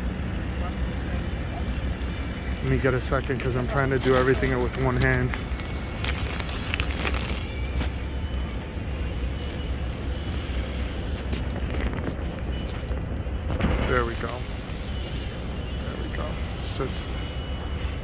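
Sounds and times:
low rumble of cars: 0.0s - 18.0s.

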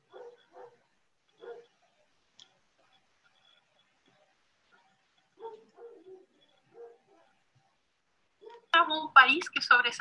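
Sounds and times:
dog barking faintly: 0.0s - 2.0s, 4.6s - 7.8s, 8.4s - 8.8s.

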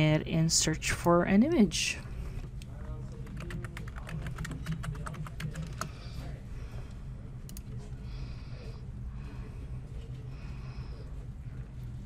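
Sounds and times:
typing on computer keyboard: 3.2s - 6.0s.

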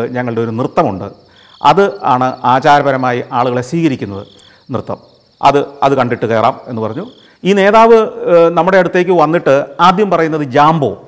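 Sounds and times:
crickets chirring: 0.0s - 11.0s
man talking: 0.0s - 11.0s.

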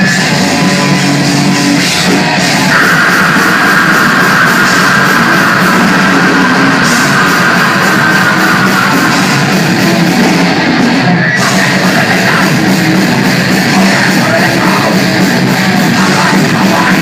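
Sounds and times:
distorted electric guitars: 0.0s - 17.0s
drum kit: 0.0s - 17.0s.

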